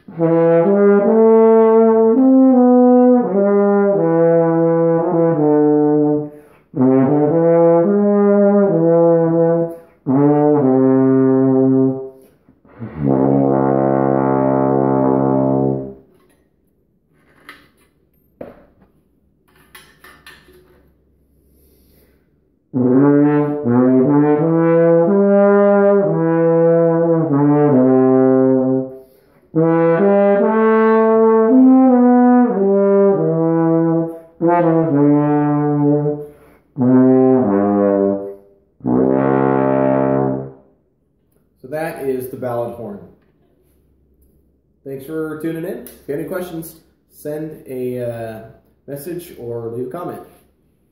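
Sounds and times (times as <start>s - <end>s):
brass horn sustained notes: 0.1s - 16.0s, 22.8s - 40.6s.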